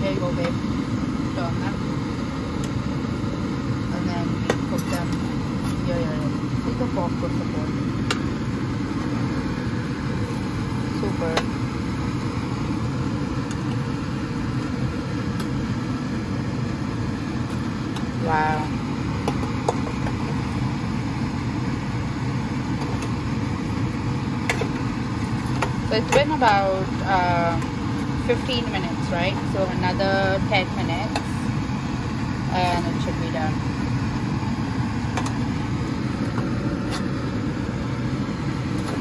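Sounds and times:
kitchen fan humming: 0.0 - 39.0.

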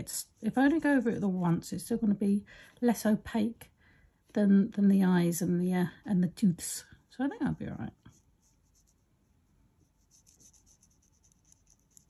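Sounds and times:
paintbrush scratching on paper: 7.9 - 12.0.

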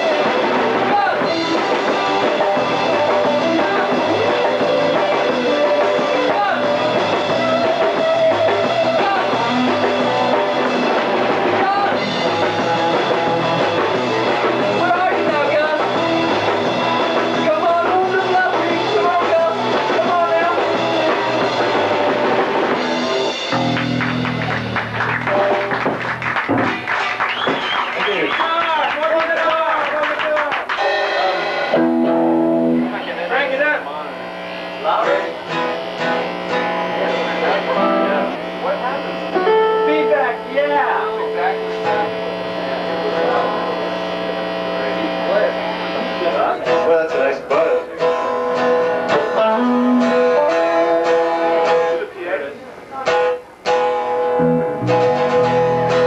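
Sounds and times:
live rock band playing: 0.0 - 56.0
amplifier feedback tone: 30.8 - 47.3.

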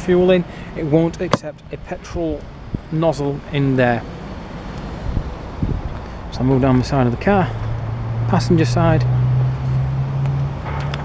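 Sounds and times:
wind on microphone: 5.0 - 6.3.

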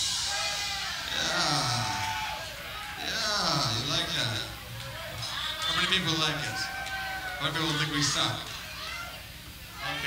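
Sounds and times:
audience shouting and whooping: 0.0 - 10.0.

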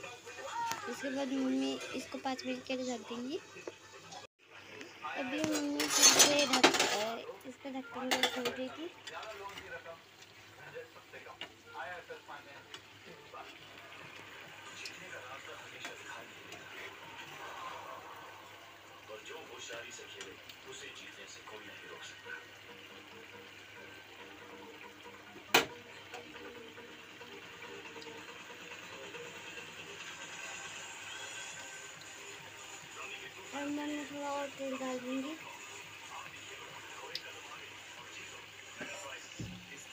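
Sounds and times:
curry simmering and sizzling: 0.0 - 39.9.

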